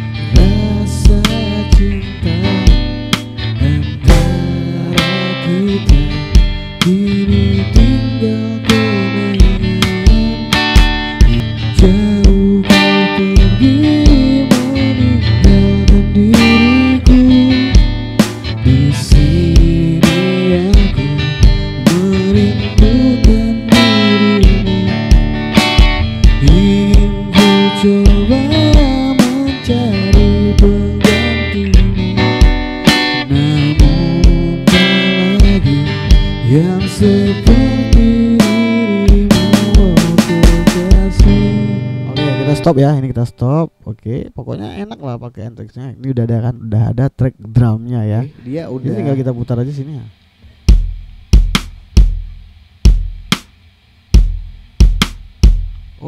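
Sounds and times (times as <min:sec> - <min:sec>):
man singing: 0:00.0 - 0:25.3, 0:26.3 - 0:32.5, 0:33.1 - 0:43.4
steady drum beat: 0:00.0 - 0:42.7, 0:50.4 - 0:56.0
strummed acoustic guitar: 0:00.0 - 0:43.0.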